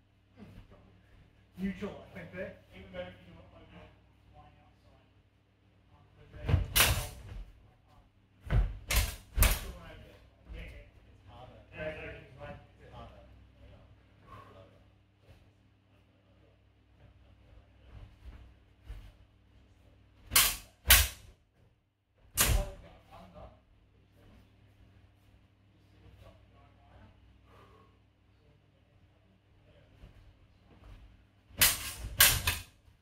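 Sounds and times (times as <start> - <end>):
swords knocking and thudding: 6.5 - 7.2, 8.5 - 9.8, 20.3 - 21.3, 22.4 - 22.8, 31.6 - 32.7.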